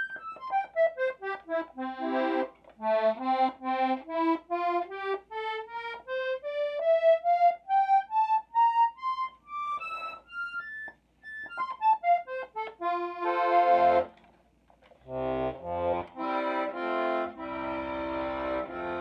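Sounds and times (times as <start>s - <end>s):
button accordion playing: 0.0s - 14.2s, 15.0s - 19.0s.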